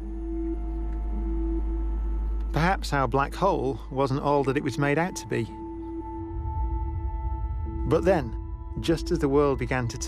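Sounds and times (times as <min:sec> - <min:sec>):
ambient drone of held tones: 0:00.0 - 0:10.0
deep low hum: 0:00.0 - 0:10.0.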